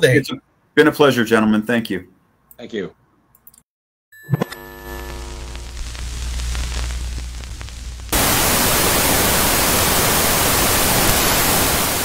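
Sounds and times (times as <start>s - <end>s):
low hum: 4.4s - 9.0s
loud white-noise static: 4.6s - 12.0s.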